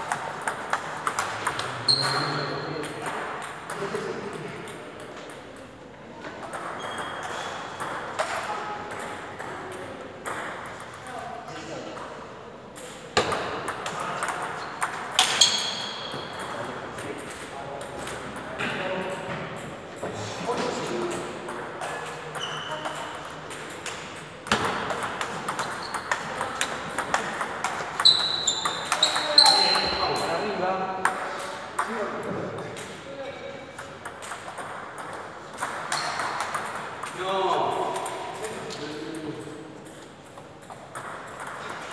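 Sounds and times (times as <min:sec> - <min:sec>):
short high squeaks: 0:28.0 - 0:30.1
table tennis ball clicking: 0:33.8 - 0:37.2.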